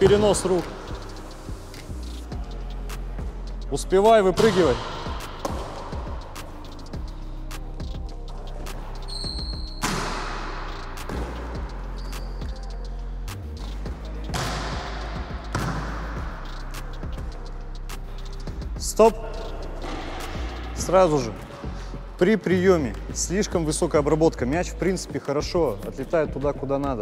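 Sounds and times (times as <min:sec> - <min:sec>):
background music: 0:00.0 - 0:27.0
volleyball hits with echo: 0:04.4 - 0:06.4, 0:09.5 - 0:11.6, 0:14.2 - 0:16.4.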